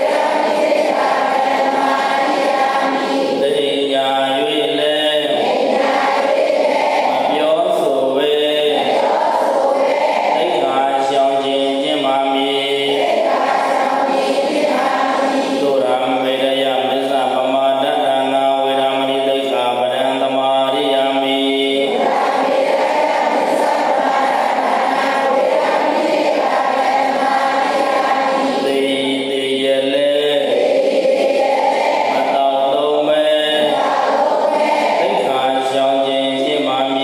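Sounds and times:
group chanting in unison: 0.0s - 37.0s.

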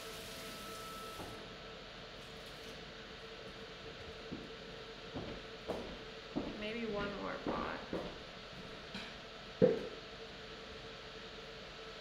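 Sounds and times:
pottery wheel humming: 0.0s - 12.0s.

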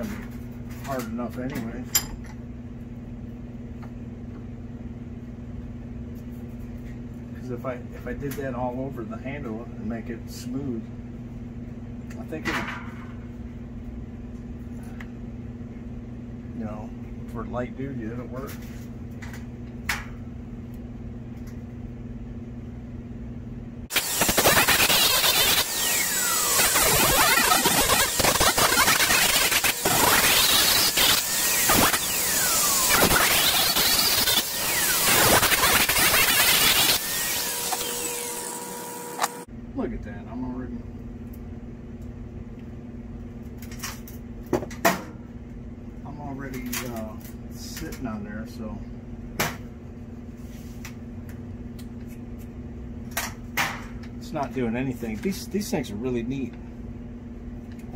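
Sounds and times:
angle grinder grinding wood: 23.9s - 39.5s
low steady hum: 37.4s - 57.9s.

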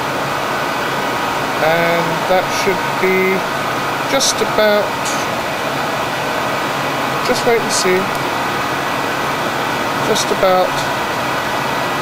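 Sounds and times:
machinery rushing hiss: 0.0s - 12.0s.

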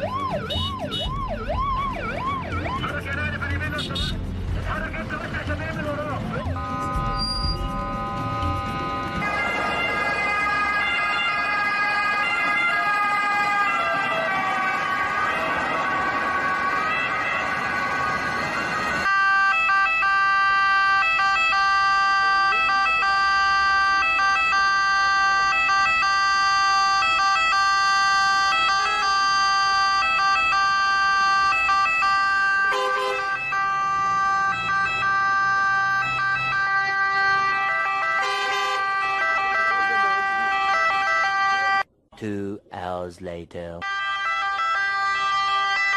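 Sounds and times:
ambulance siren: 0.0s - 4.3s, 5.1s - 41.9s, 43.8s - 45.9s
heavy traffic noise: 0.0s - 45.9s.

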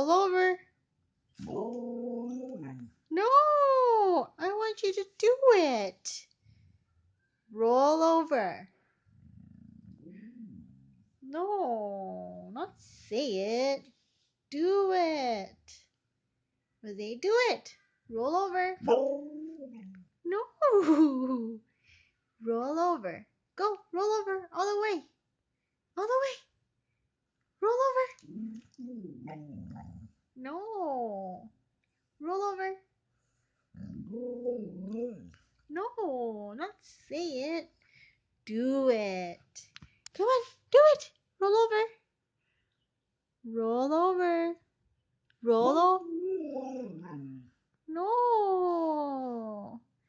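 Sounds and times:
dog grumbling vocalization: 9.1s - 11.0s, 28.2s - 30.2s, 33.7s - 35.5s, 46.2s - 47.6s.

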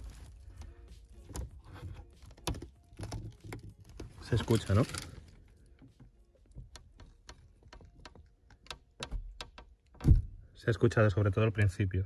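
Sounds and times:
rubber window seal clicks and creaks: 0.0s - 10.4s.

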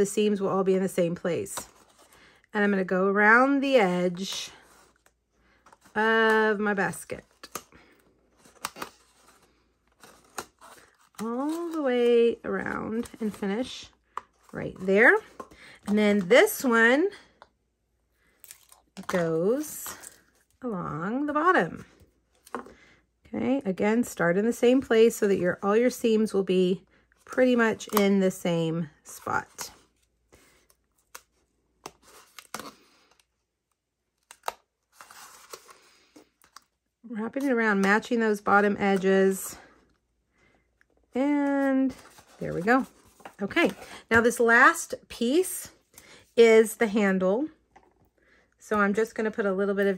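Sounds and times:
paper rustling: 41.9s - 44.3s.

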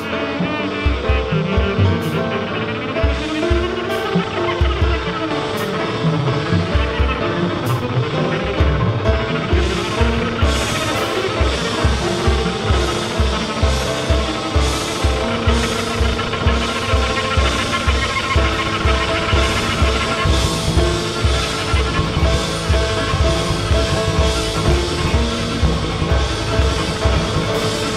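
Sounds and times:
bowed double bass: 0.0s - 27.9s
drums: 0.0s - 27.9s
piano: 0.0s - 27.9s.

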